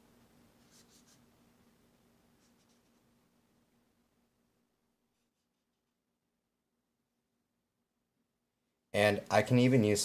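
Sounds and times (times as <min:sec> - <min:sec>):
marker felt tip rubbing on paper: 0:00.6 - 0:01.3, 0:02.4 - 0:03.0.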